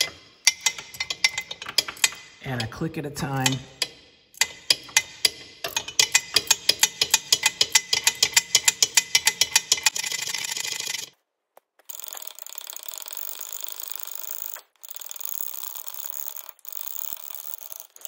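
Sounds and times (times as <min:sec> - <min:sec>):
ratchet wrench clicking: 0:00.0 - 0:11.1, 0:11.9 - 0:18.0.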